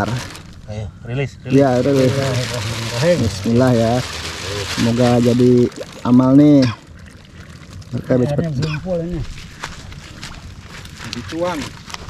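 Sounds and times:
people's voices: 0.0s - 6.8s
water pouring and sloshing: 1.5s - 12.0s.

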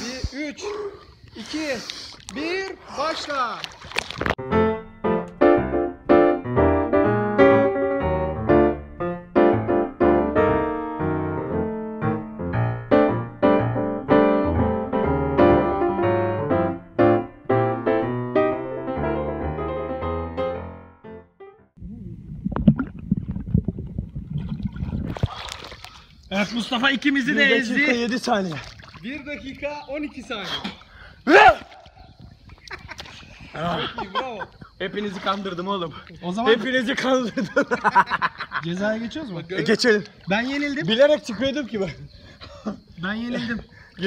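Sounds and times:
low rough water noise: 0.0s - 5.0s, 21.7s - 43.0s.

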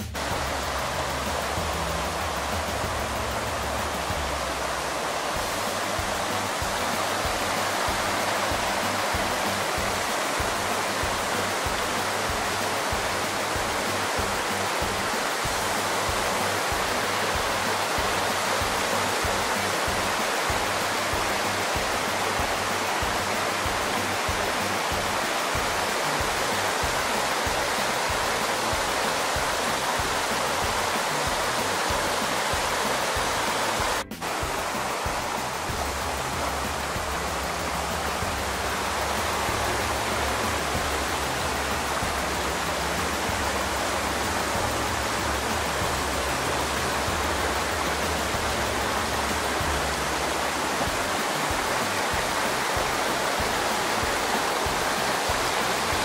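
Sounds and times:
creek rushing over boulders: 0.0s - 56.0s.

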